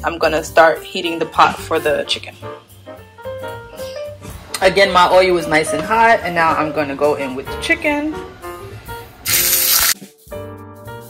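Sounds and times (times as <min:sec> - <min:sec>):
background piano music: 0:00.0 - 0:11.0
chicken sizzling in hot oil: 0:09.2 - 0:10.0.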